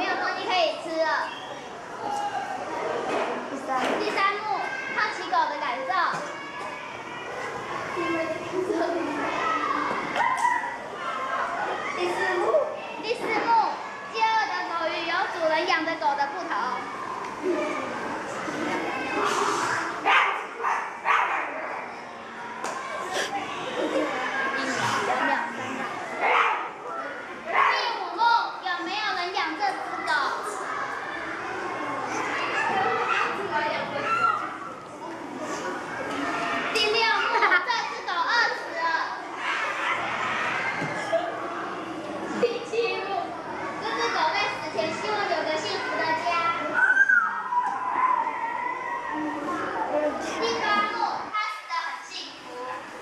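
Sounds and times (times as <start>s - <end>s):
children chattering: 0.0s - 53.0s.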